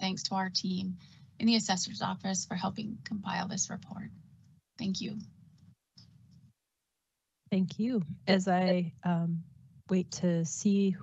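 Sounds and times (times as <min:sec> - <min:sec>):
woman speaking over video call: 0:00.0 - 0:04.2, 0:04.8 - 0:05.3, 0:07.5 - 0:11.0
faint low noise: 0:00.0 - 0:11.0.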